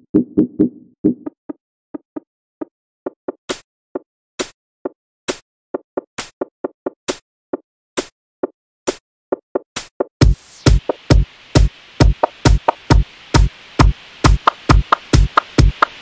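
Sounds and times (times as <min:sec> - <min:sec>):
electronic percussion plucks: 0:00.0 - 0:01.4, 0:10.2 - 0:15.9.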